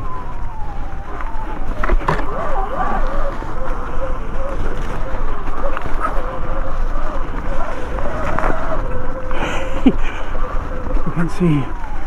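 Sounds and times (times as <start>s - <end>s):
tyres rolling through leaf litter: 0.0s - 12.0s.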